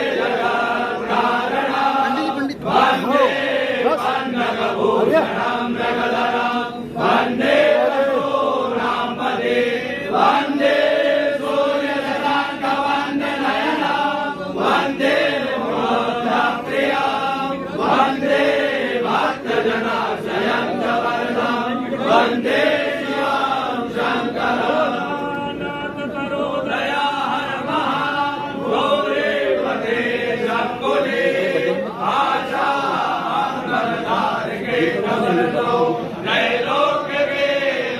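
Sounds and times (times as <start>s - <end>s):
men chanting in unison: 0.0s - 37.9s.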